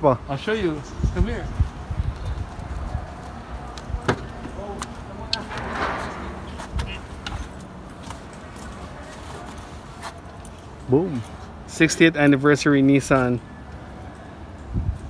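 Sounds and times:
footsteps on pavement: 1.2 - 11.6.

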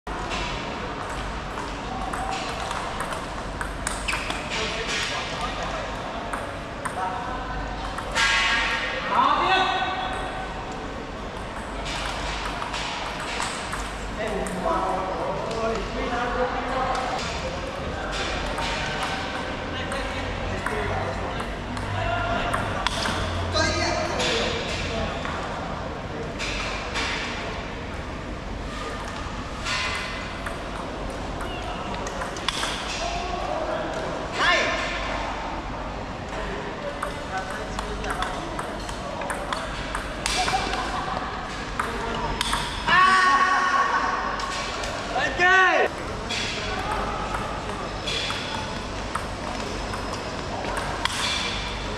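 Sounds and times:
table tennis ball clicks: 41.8 - 42.9.

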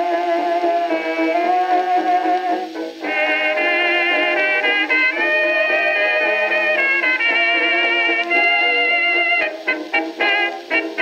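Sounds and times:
old dance-band record: 0.0 - 11.0.

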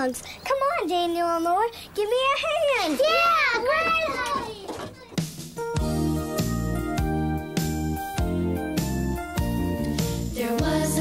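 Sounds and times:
young children's high voices: 0.0 - 5.2.

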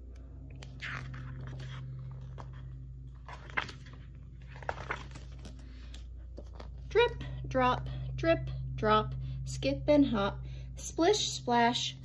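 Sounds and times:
steady low hum: 0.0 - 12.0
paper rustling: 0.6 - 6.8.

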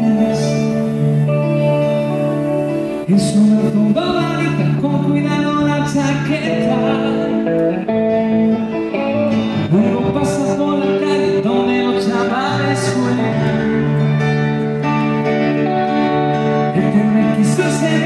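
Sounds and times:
electric guitar: 0.0 - 18.0
keyboard playing piano: 0.0 - 18.0
man singing: 0.0 - 18.0.

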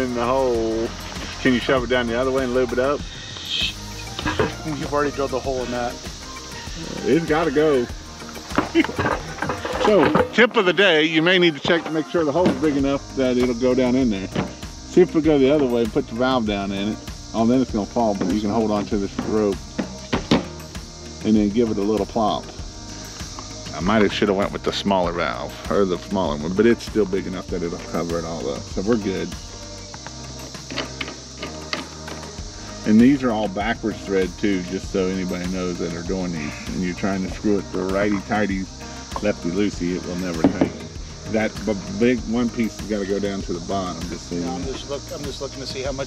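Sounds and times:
men laughing and talking: 0.0 - 19.6, 32.7 - 46.0
crickets chirring: 0.0 - 46.0.

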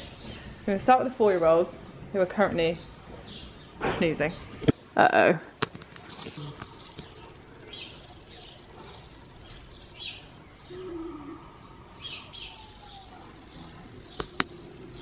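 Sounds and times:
small birds chirping: 0.0 - 15.0.

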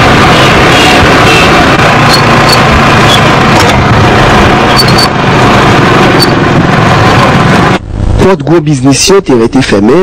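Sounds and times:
distorted vehicle noise: 0.0 - 10.0.

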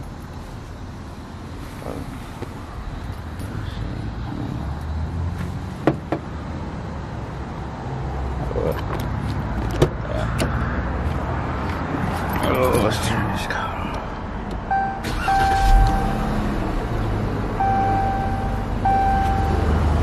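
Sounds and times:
car engine rumbling: 0.0 - 20.0.

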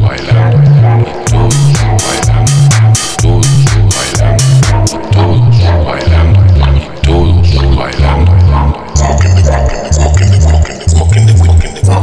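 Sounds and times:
deep bass line: 0.0 - 12.0
electronic dance track: 0.0 - 12.0
crisp percussion hits: 1.3 - 5.1.

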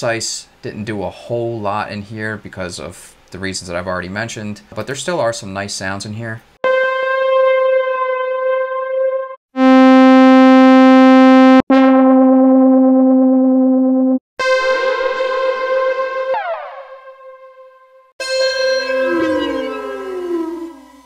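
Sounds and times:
analog synthesizer notes: 6.6 - 21.0.

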